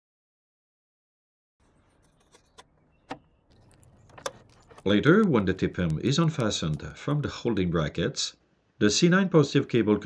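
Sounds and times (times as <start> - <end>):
faint plastic rattling: 2.0 - 7.0.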